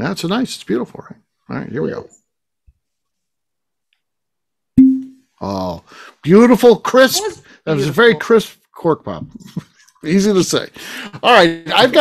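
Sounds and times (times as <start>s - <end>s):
cork popping from bottle: 4.8s - 5.2s
hollow ringing tone: 4.8s - 5.2s.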